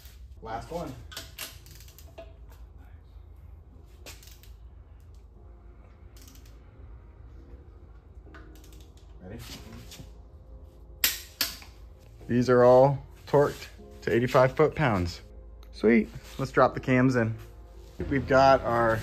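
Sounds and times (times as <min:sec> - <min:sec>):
low hum: 0:01.9 - 0:12.3.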